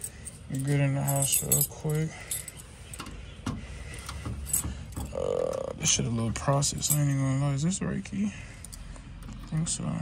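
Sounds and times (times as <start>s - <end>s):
keys clinking: 0.0s - 3.1s, 6.6s - 7.4s.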